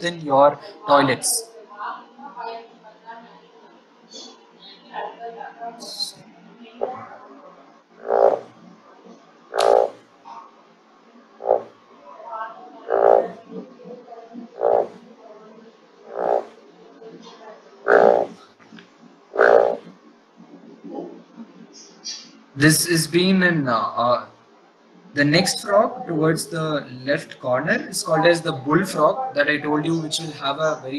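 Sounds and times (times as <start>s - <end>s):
frog calls: 8.0s - 8.6s, 9.5s - 10.0s, 11.4s - 11.8s, 12.8s - 13.6s, 14.6s - 15.0s, 16.0s - 16.6s, 17.8s - 18.4s, 19.3s - 19.9s.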